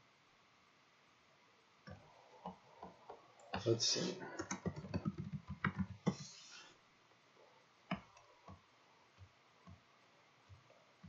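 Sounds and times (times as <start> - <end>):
typing on computer keyboard: 4.4 - 6.2.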